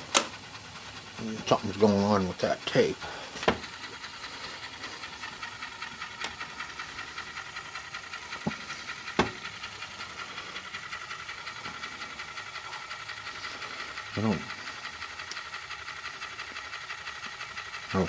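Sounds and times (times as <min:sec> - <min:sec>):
cassette deck hiss: 0:00.0 - 0:00.4, 0:08.1 - 0:10.6.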